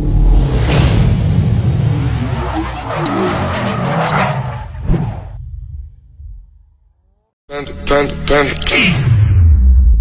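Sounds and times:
car tyres skidding and squealing: 1.8s - 5.4s.

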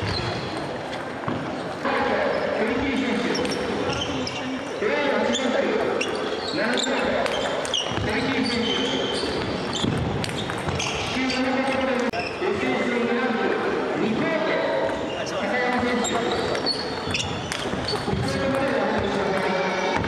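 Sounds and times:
chatter of voices: 11.1s - 20.0s.

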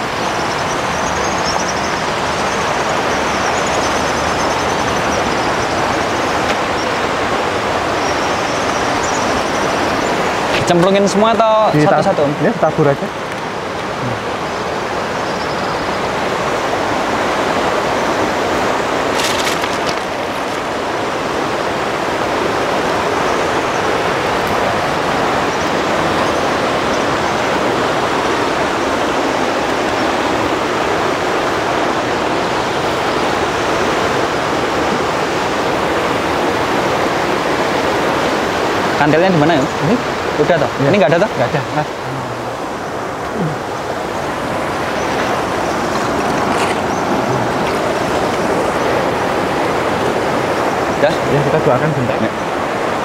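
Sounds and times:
river rushing over rapids: 0.0s - 53.0s.

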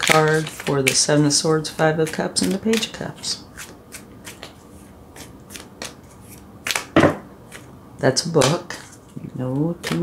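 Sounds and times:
cards being shuffled: 0.0s - 7.7s, 9.8s - 10.0s.

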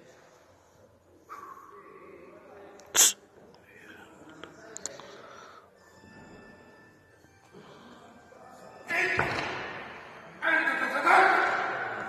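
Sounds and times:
faint room murmur: 0.0s - 8.9s.

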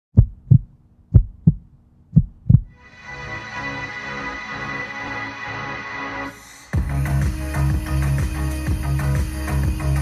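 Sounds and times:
heartbeat thumps: 0.1s - 2.8s
electronic music: 2.8s - 10.0s.

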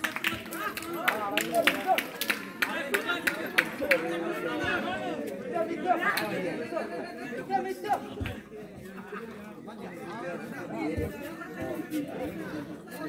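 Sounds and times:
people chattering: 0.0s - 13.0s.

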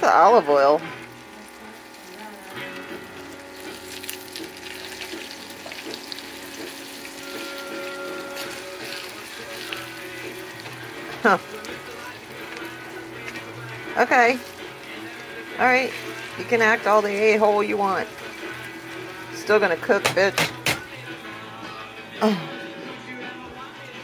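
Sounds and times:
eggplant sizzling in oil: 0.0s - 21.2s
soft music: 0.0s - 24.0s.

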